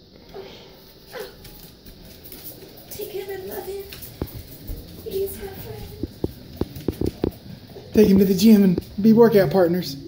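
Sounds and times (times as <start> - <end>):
dog claws clicking on tile: 1.0 - 9.0.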